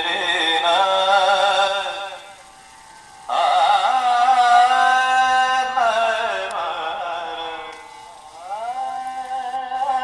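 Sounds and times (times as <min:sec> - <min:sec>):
person singing with vibrato: 0:03.3 - 0:10.0.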